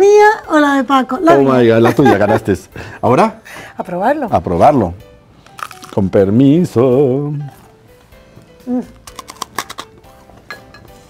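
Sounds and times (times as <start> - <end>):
crunching bites of crisp bread: 5.5 - 6.1, 8.9 - 9.9.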